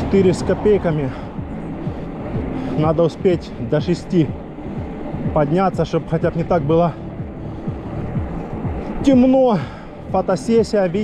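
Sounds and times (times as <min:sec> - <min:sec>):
faint low whooshes: 0:00.0 - 0:09.1
wind on microphone: 0:00.0 - 0:09.3
tyres rolling on asphalt: 0:00.0 - 0:11.0.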